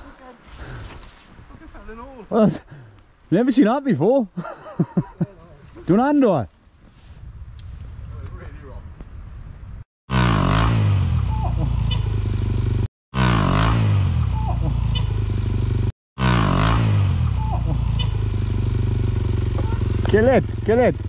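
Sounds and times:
dirt bike engine revving: 10.1s - 21.0s.

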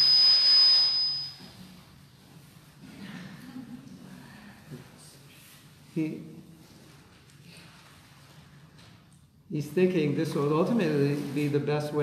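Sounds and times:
high-pitched whistle with hiss: 0.0s - 1.6s.

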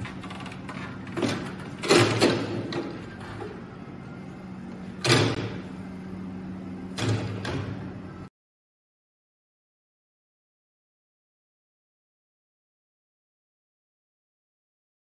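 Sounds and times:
steady low hum: 0.0s - 8.3s.

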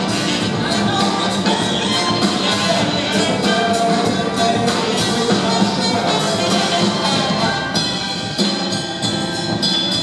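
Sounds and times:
brass section: 0.0s - 9.0s
percussion beat: 0.0s - 10.0s.

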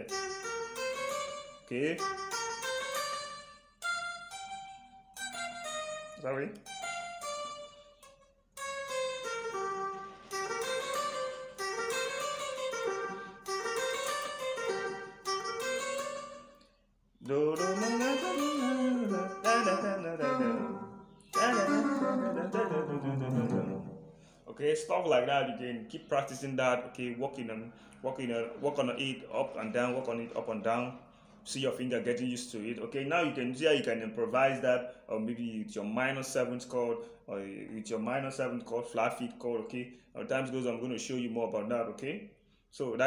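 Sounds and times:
electric guitar single notes: 17.3s - 24.2s.

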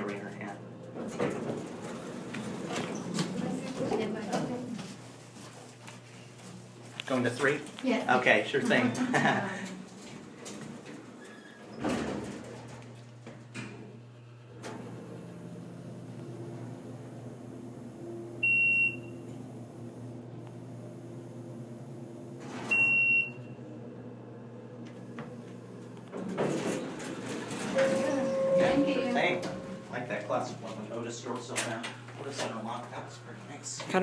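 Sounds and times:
elevator pump motor humming: 11.7s - 34.0s.

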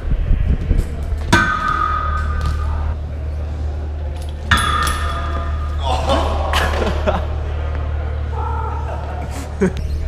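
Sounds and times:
bike pegs clanging on steel pole: 4.2s - 5.7s.

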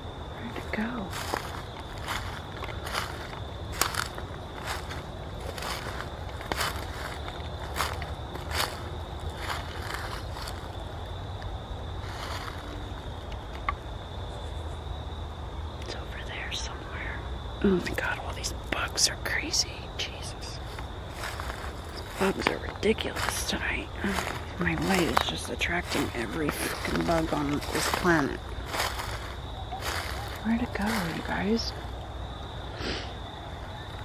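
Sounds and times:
footsteps crunching through dry leaves: 0.8s - 11.0s, 11.9s - 13.0s, 20.6s - 31.9s.

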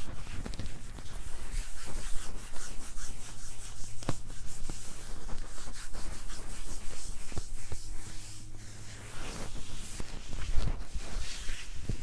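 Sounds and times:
hands rubbing on fabric: 0.0s - 12.0s.

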